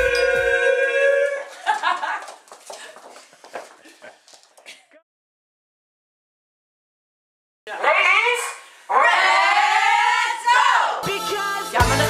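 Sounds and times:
women whooping: 0:00.0 - 0:01.6.

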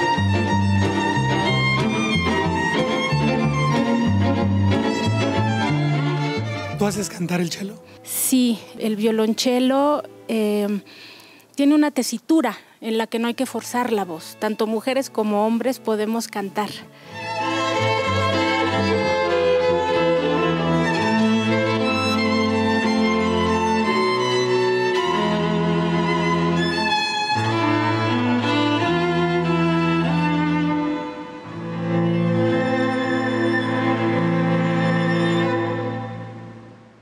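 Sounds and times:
cello bass line: 0:00.0 - 0:07.5, 0:17.2 - 0:37.0
violins bowing melody: 0:00.0 - 0:11.1, 0:13.4 - 0:37.0.

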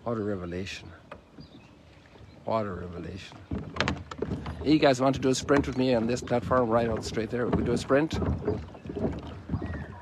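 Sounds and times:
footsteps on plastic dock: 0:00.0 - 0:10.0.

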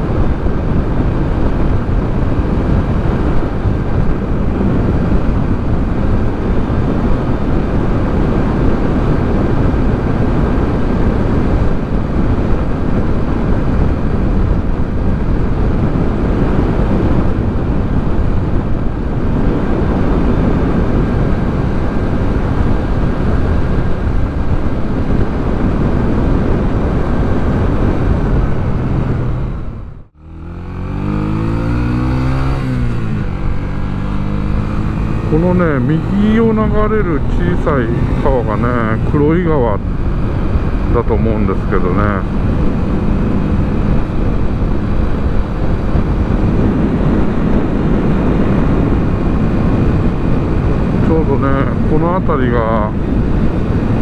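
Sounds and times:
motorcycle engine running: 0:00.0 - 0:54.0
wind on microphone: 0:00.0 - 0:54.0.

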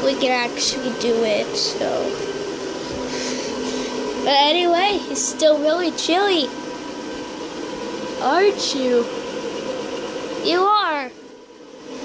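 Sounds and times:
blower fan whirring hum: 0:00.0 - 0:12.0.

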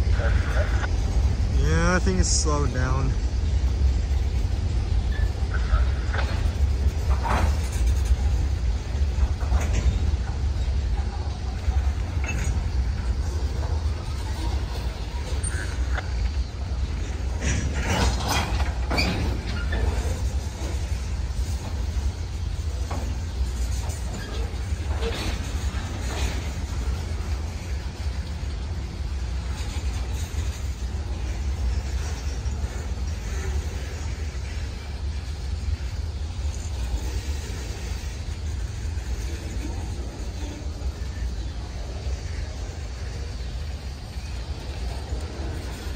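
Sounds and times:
freight train rolling past: 0:00.0 - 0:45.9
metallic clanks and squeaks: 0:04.1 - 0:41.6.

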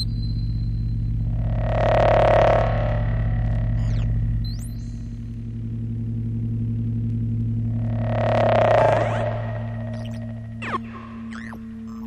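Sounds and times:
electronic drone music: 0:00.0 - 0:12.0.

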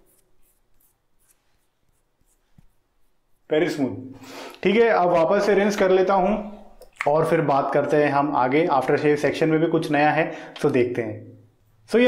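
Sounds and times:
fingertips rubbing skin: 0:00.0 - 0:03.8.

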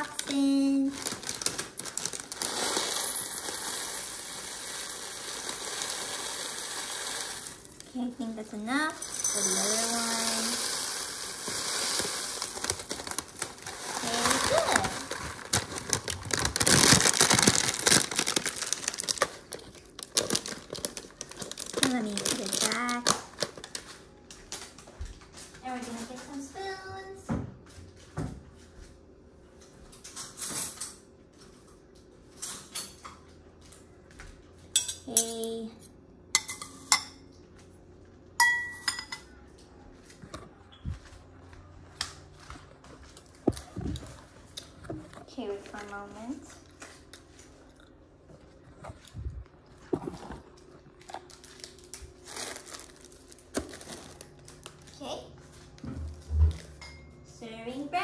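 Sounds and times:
cereal pouring into bowl: 0:01.1 - 0:07.8, 0:09.0 - 0:22.8
spoons clinking on bowls: 0:08.9 - 0:12.2, 0:34.7 - 0:35.6, 0:36.4 - 0:37.3, 0:38.4 - 0:39.4.

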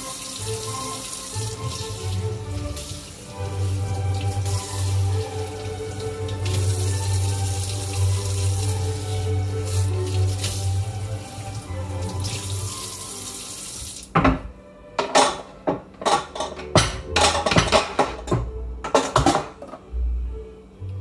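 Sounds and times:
tap water running onto board: 0:00.0 - 0:14.4
dishes clattering and knocking: 0:14.1 - 0:19.8.

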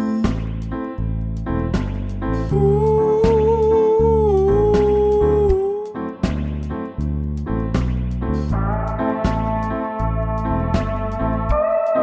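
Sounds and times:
backing track with beat and bass: 0:00.0 - 0:12.0.

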